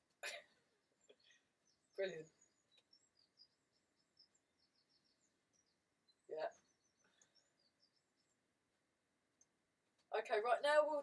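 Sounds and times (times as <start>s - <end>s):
faint bird chirping: 0.0s - 11.0s.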